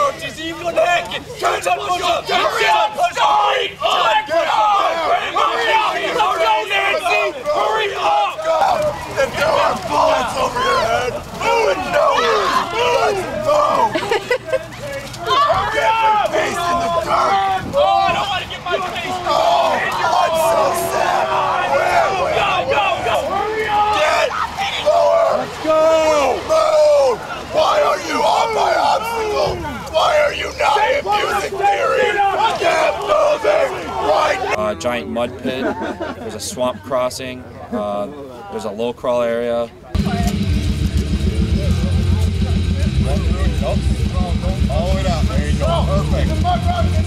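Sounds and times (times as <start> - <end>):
group of people shouting: 0.0 - 14.0, 15.0 - 34.6, 44.8 - 47.0.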